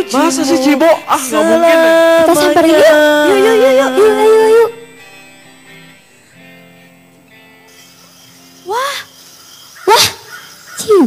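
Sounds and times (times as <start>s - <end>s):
soft guitar music: 0.0s - 11.0s.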